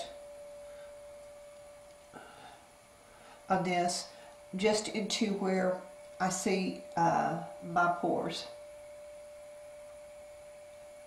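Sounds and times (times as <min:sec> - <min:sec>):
faint steady pure-pitch hum: 0:00.0 - 0:11.0.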